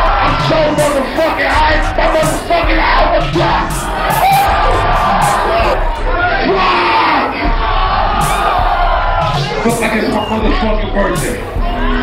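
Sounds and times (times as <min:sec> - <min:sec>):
concert crowd cheering and yelling: 0:00.0 - 0:12.0.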